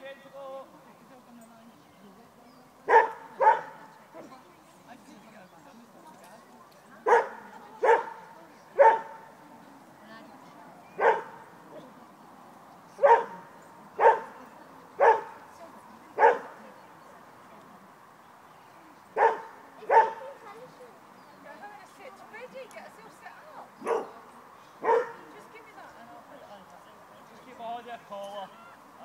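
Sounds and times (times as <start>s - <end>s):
dog barking: 2.8s - 3.8s, 7.0s - 9.3s, 11.0s - 11.4s, 13.0s - 14.4s, 15.0s - 15.4s, 16.2s - 16.6s, 19.2s - 20.4s, 23.8s - 24.2s, 24.8s - 25.3s.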